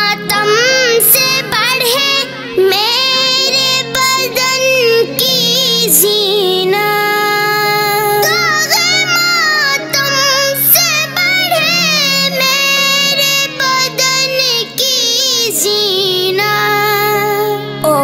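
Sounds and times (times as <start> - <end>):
boy singing devotional song: 0.0 - 18.0.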